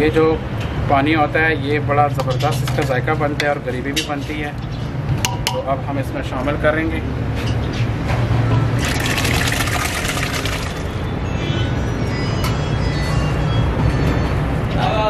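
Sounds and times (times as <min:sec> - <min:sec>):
beans poured sizzling and splashing: 0:08.8 - 0:11.0.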